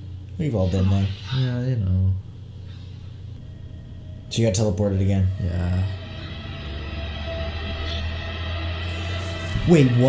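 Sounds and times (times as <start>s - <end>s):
low steady drone score: 0.0s - 10.0s.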